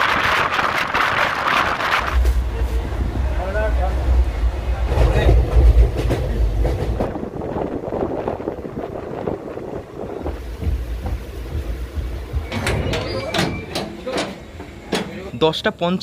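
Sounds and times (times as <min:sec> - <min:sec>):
train wheels clattering on track: 0:04.8 - 0:15.3.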